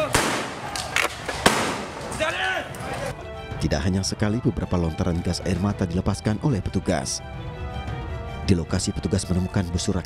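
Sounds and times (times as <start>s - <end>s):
tear gas rounds firing: 0.0s - 2.4s.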